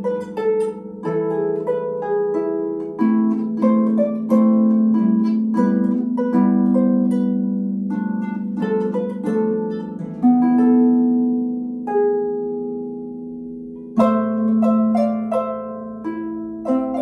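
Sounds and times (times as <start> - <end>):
harp playing slow melody: 0.0 - 17.0.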